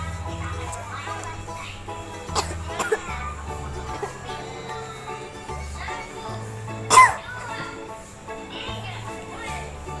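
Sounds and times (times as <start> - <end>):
background music: 0.0 - 10.0
child coughing: 2.3 - 4.3, 6.9 - 7.4.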